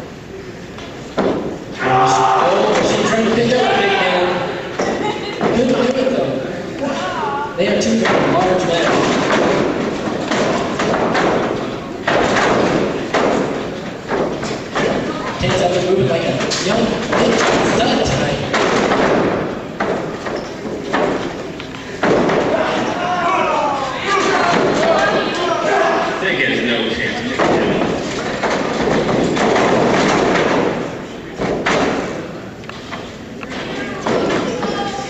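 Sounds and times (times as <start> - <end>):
people talking and calling out: 1.6 - 12.1, 13.0 - 29.5, 30.5 - 35.0
bodies slamming on ring canvas: 8.0 - 15.6, 16.4 - 22.9, 27.4 - 32.3.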